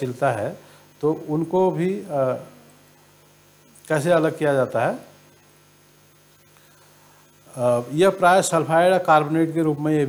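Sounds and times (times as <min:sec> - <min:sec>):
electrical mains hum: 0:00.0 - 0:10.0
low hiss: 0:00.0 - 0:10.0.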